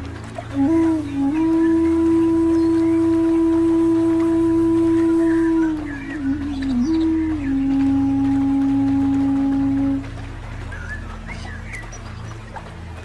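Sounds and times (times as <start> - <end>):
low sustained drone: 0.0 - 13.0
flute holding long notes: 0.3 - 11.6.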